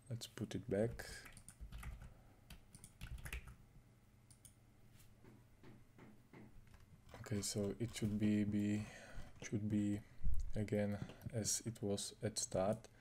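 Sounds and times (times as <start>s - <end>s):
faint keyboard typing: 0.8s - 3.6s, 4.2s - 4.6s.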